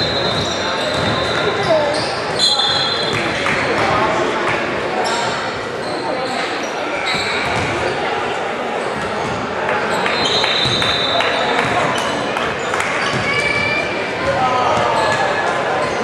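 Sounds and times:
sneakers squeaking: 0:00.0 - 0:16.0
spectators chatting: 0:00.0 - 0:16.0.

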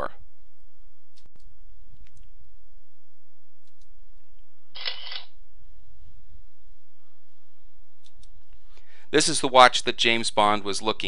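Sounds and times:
camera shutter sound effect: 0:04.8 - 0:05.3.

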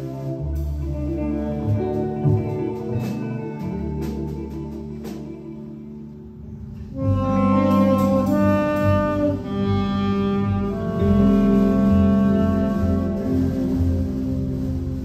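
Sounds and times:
double bass: 0:00.0 - 0:15.0
electric guitar: 0:00.0 - 0:15.0
saxophones playing melody: 0:00.0 - 0:15.0.

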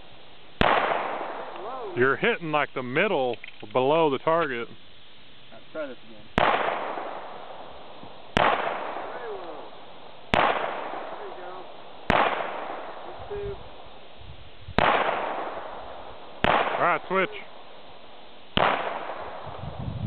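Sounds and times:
handgun shots with echo: 0:00.6 - 0:01.5, 0:10.3 - 0:11.1, 0:12.1 - 0:12.9, 0:18.6 - 0:19.4.

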